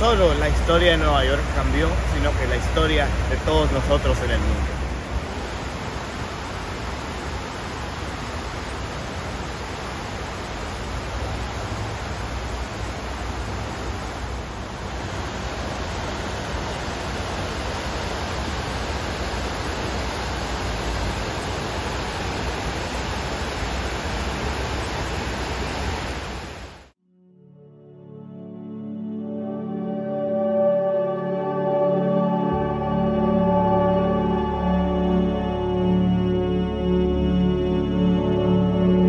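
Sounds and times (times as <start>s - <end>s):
water cascading into a basin: 5.1s - 26.9s.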